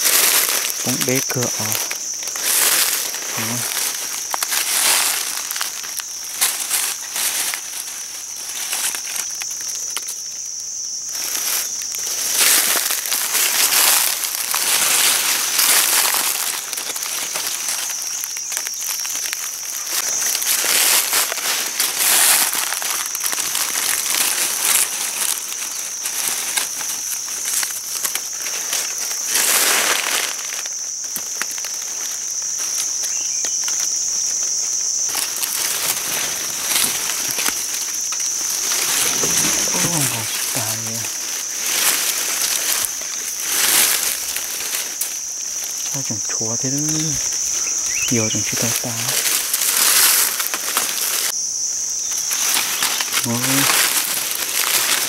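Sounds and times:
dry leaves crunching and rustling: 0:00.0 - 0:55.0
high-pitched insect buzz: 0:00.0 - 0:55.0.

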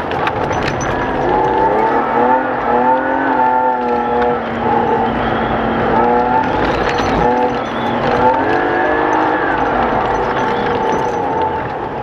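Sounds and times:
race car engine revving: 0:00.0 - 0:12.0
tyre and road noise: 0:00.0 - 0:12.0.

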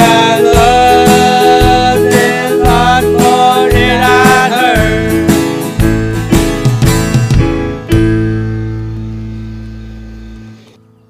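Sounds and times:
acoustic guitar chord ringing: 0:00.0 - 0:10.6
low bass note: 0:07.8 - 0:10.6.

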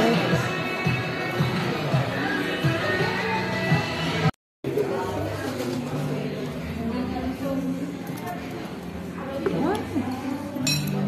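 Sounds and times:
background music: 0:00.0 - 0:11.0
voices in a busy room: 0:00.0 - 0:11.0
tableware clink: 0:10.6 - 0:11.0.

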